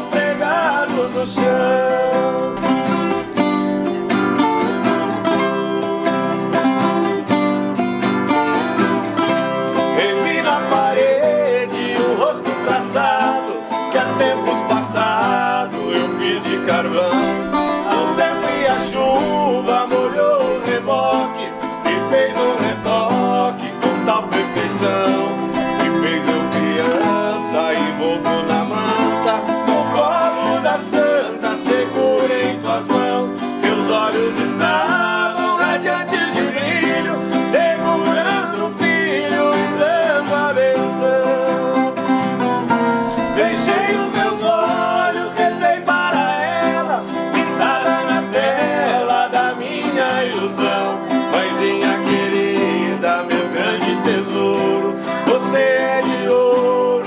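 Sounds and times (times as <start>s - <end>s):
two men singing: 0.0s - 3.4s, 9.1s - 57.0s
acoustic guitar strumming: 0.0s - 57.0s
viola caipira: 0.0s - 57.0s.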